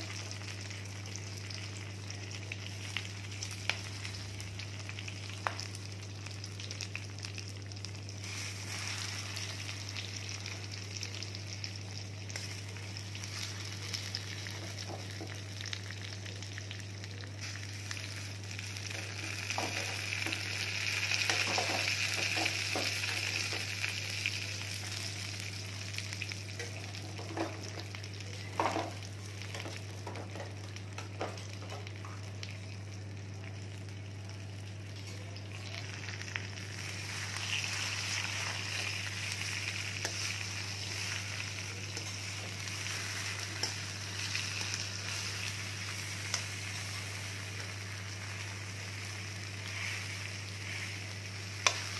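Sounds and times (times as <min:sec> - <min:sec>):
food sizzling in hot oil: 0:00.0 - 0:51.9.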